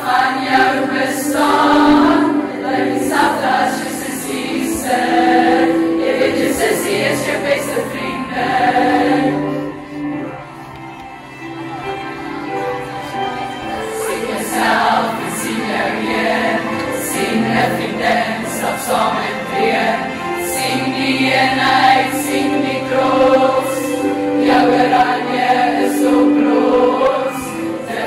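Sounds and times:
girls choir singing: 0:00.0 - 0:10.8, 0:11.6 - 0:28.0.

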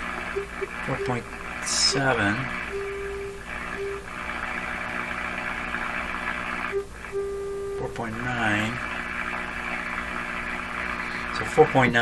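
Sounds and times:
steady test tone: 0:00.0 - 0:11.5
low hum: 0:00.0 - 0:11.8
shortwave radio hiss: 0:00.0 - 0:12.0.

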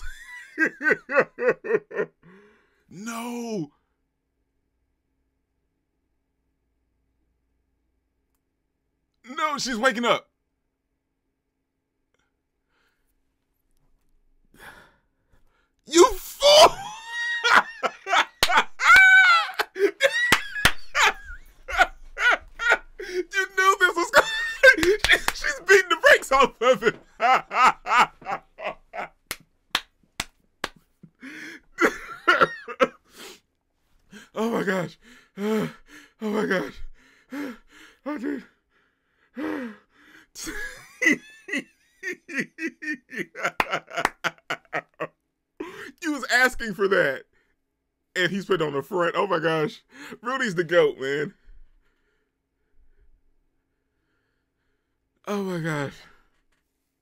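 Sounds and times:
man laughing hard: 0:00.0 - 0:02.3, 0:15.9 - 0:29.3, 0:31.2 - 0:33.0, 0:40.4 - 0:46.0
man sighing: 0:23.0 - 0:23.4, 0:31.1 - 0:31.9.

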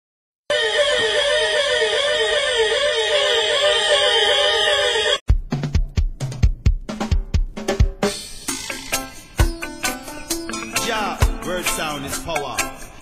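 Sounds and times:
dub siren warbling tone: 0:00.5 - 0:05.2
bass drum and snare hits: 0:05.3 - 0:08.2.

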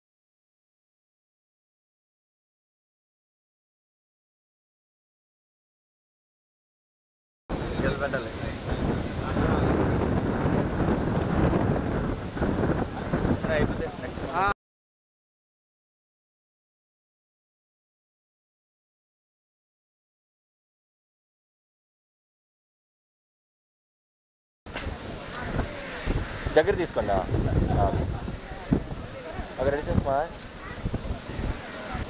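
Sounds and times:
sea surf breaking: 0:07.5 - 0:14.5, 0:24.7 - 0:32.0
wind on microphone: 0:07.5 - 0:14.5, 0:24.7 - 0:32.0
faint voices: 0:24.7 - 0:32.0.

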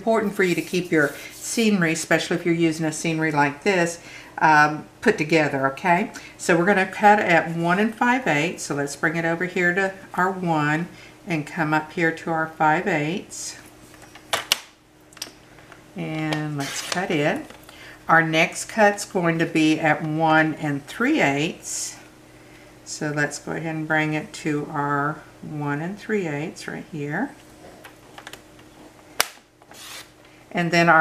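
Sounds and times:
blade sliding through paper: 0:00.3 - 0:01.6, 0:29.7 - 0:30.2.

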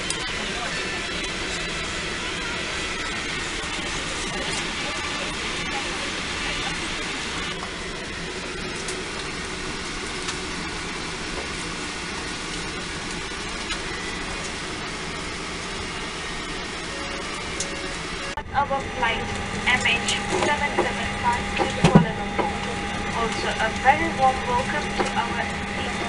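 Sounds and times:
murmur of passengers' voices: 0:00.0 - 0:26.0.

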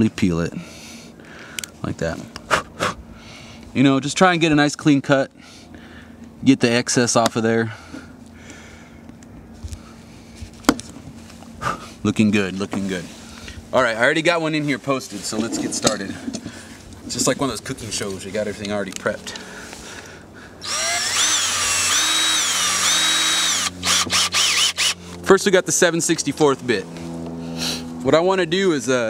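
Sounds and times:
drill bit clicks: 0:20.6 - 0:25.0
cordless drill motor whining: 0:20.6 - 0:25.2.

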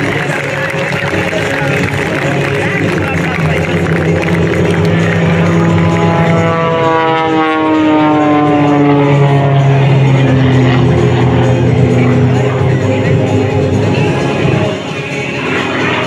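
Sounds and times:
music: 0:00.0 - 0:16.0
plane engine and propeller droning: 0:00.0 - 0:16.0.

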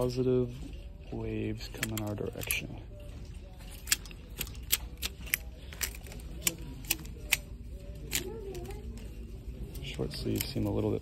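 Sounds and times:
plastic hangers clicking on metal rack: 0:01.4 - 0:02.8, 0:03.6 - 0:11.0.

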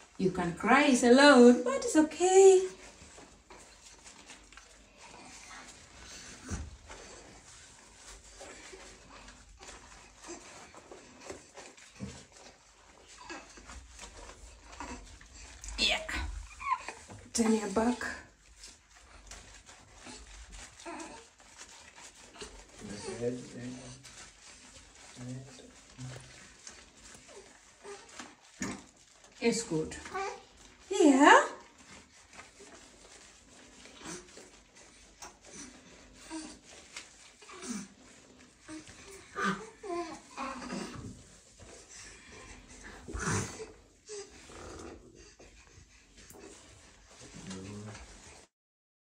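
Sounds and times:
washcloth rubbing and squishing: 0:00.0 - 0:48.5
baby whimpering and crying: 0:20.8 - 0:21.3, 0:38.7 - 0:41.1.

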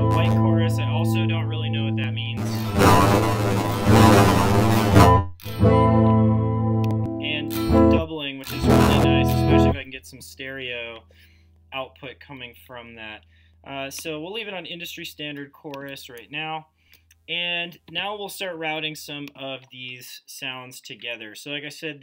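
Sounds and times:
guitar with modulation effect: 0:00.0 - 0:09.9.

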